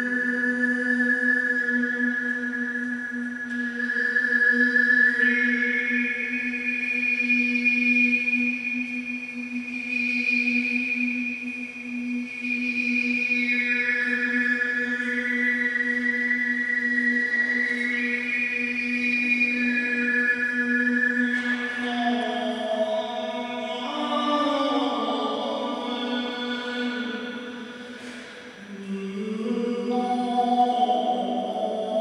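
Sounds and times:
men overtone singing drone: 19.3 - 32.0.

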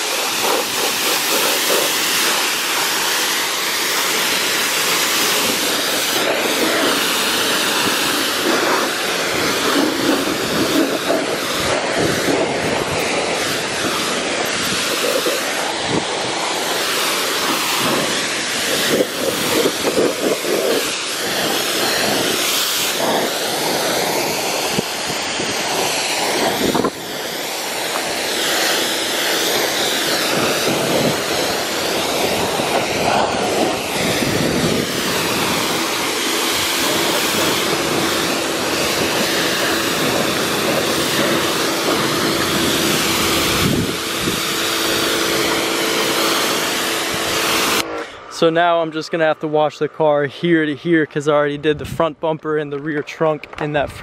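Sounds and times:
pressure washer spray hiss: 0.0 - 48.4
pressure washer motor hum: 0.0 - 49.9.

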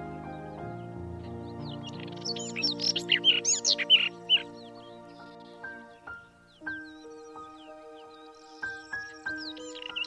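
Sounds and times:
slow background music: 0.0 - 10.0
robin singing high whistled notes: 0.4 - 10.0.

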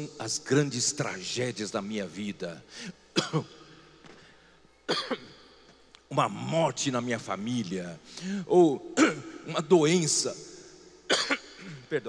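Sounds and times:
man coughing: 3.2 - 3.5, 4.9 - 5.3, 9.0 - 9.4, 11.1 - 12.0.

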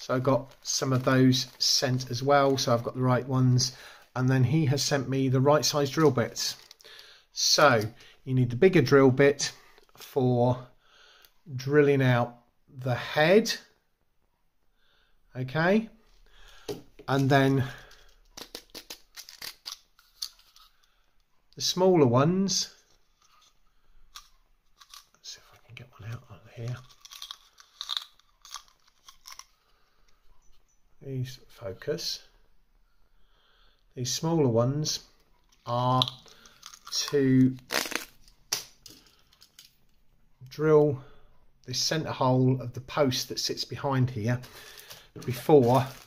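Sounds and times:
small objects handling clicks: 16.7 - 21.3, 22.9 - 25.2, 26.6 - 29.6, 35.4 - 40.0
light plastic clicks and rustles: 38.2 - 40.0.

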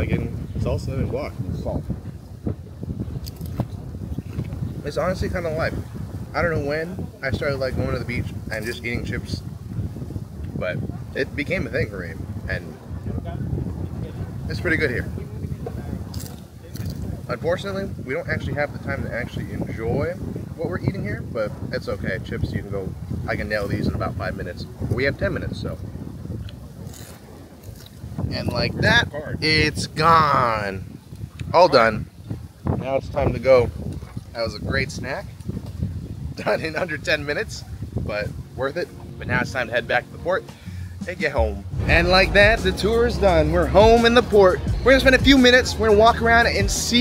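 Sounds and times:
wind rumble on microphone: 0.0 - 47.0.

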